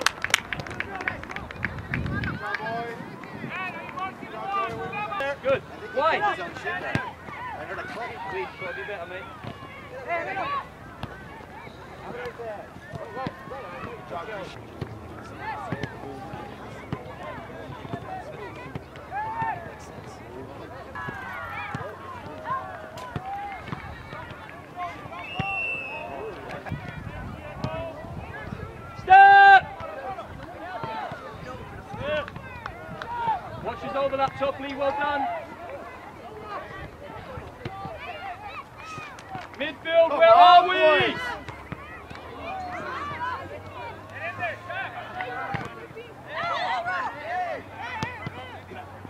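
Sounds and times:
voices shouting: 0.8s - 49.0s
referee's whistle blast: 25.2s - 26.1s.

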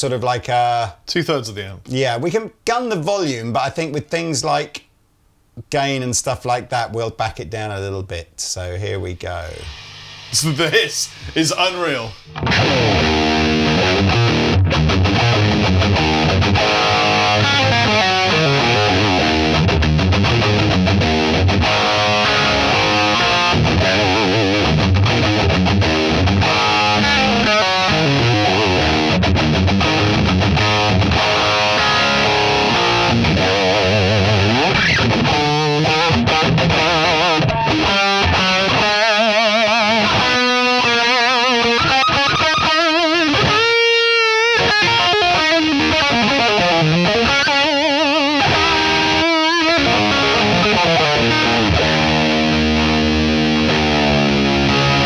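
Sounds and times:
distorted electric guitar: 9.3s - 55.0s.

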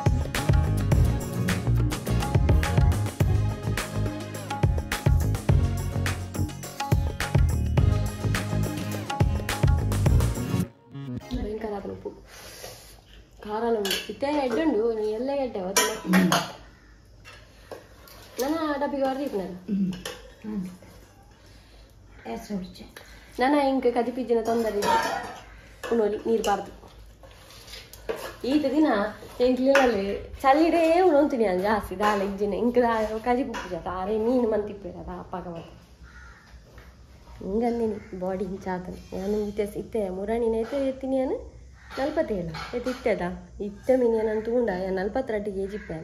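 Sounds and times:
woman's voice: 11.2s - 12.2s, 13.4s - 16.5s, 28.4s - 35.7s, 37.4s - 46.0s
kitchen utensils clinking: 15.6s - 16.6s, 24.4s - 26.8s.

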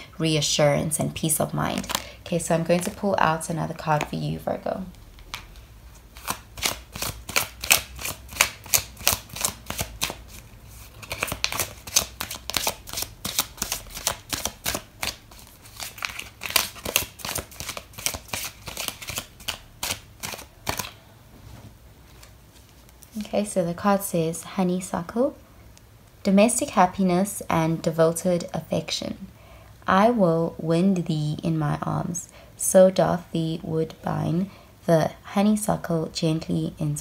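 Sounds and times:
cards being shuffled: 1.7s - 3.0s, 5.0s - 21.0s.

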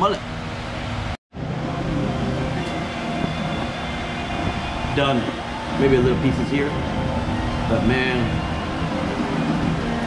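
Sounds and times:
low rumble: 1.4s - 10.0s.

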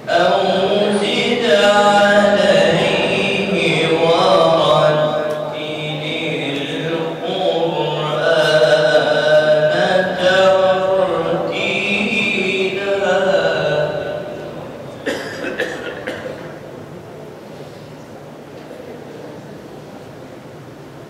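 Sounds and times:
boy chanting through a microphone: 0.0s - 16.4s.

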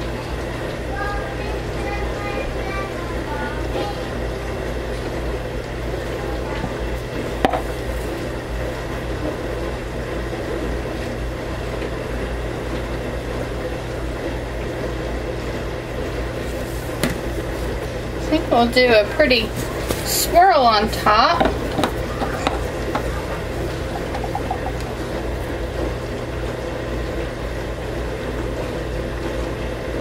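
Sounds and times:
low mechanical hum: 0.0s - 30.0s.

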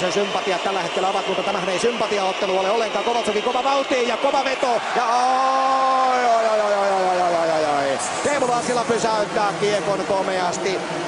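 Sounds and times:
man shouting a long cheer: 0.1s - 9.4s.

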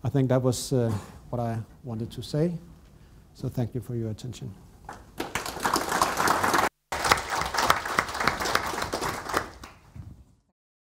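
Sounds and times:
audience applauding: 5.2s - 9.9s.

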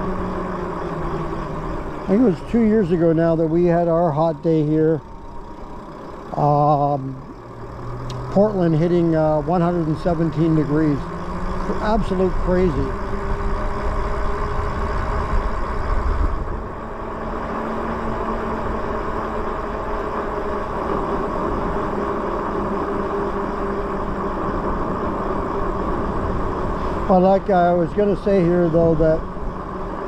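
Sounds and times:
tyres on asphalt: 0.0s - 30.0s
wind on microphone: 12.0s - 17.0s.

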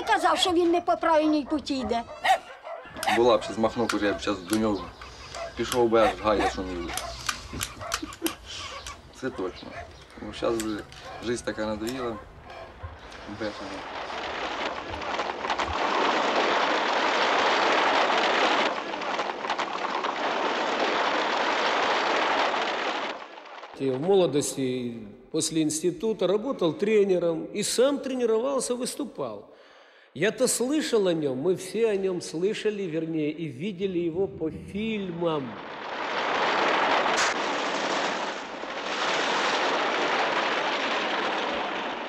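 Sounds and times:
sharp crack: 0.0s - 24.9s, 34.7s - 42.0s.

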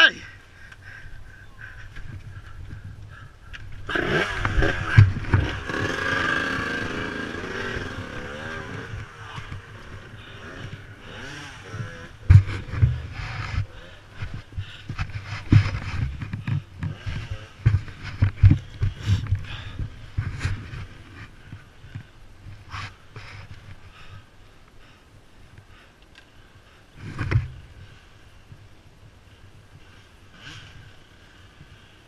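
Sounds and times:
bike bumping over rocks: 3.6s - 6.0s, 11.7s - 22.1s
dirt bike engine revving: 3.8s - 21.6s.

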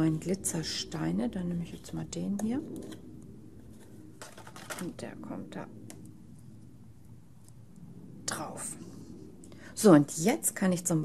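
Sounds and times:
faint handling noise: 1.6s - 5.1s.

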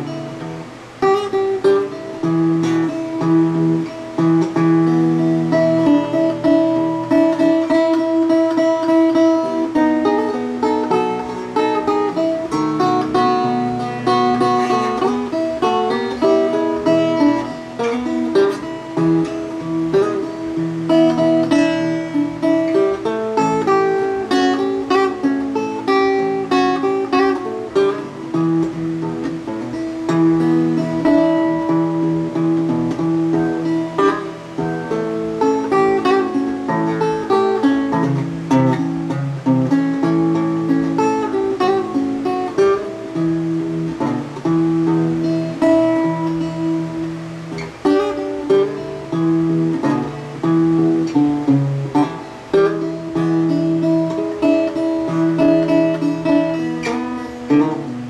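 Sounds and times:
solo acoustic blues guitar: 0.0s - 58.0s.

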